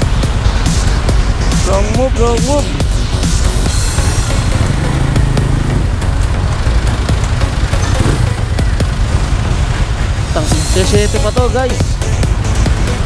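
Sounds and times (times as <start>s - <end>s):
background music: 0.0s - 13.0s
motorcycle engine running: 0.0s - 13.0s.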